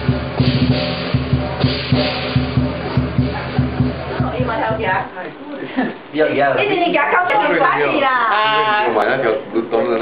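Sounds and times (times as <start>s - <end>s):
big drum beating: 0.0s - 5.2s
cymbals clashing: 0.0s - 5.2s.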